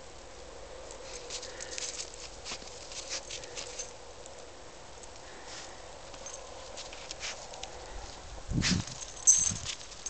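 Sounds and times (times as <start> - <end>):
footsteps crunching in snow: 1.0 - 3.9.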